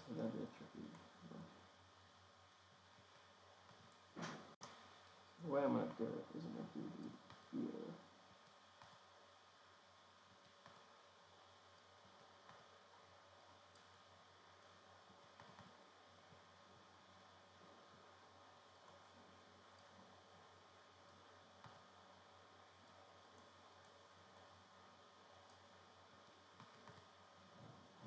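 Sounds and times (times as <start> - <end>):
faint steady hiss: 0.0 - 28.0
faint clicks: 13.6 - 14.0, 25.4 - 28.0.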